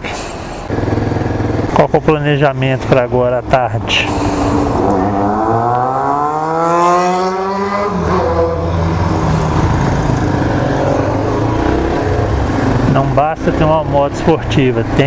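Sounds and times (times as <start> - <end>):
road and traffic noise: 0.0 - 15.0
motorcycle engine accelerating: 0.7 - 3.2, 4.0 - 15.0.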